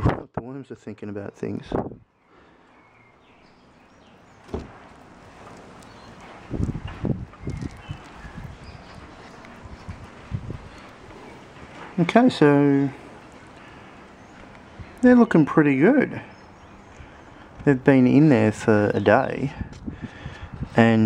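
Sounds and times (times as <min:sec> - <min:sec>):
faint outdoor background: 0:00.0 - 0:21.0.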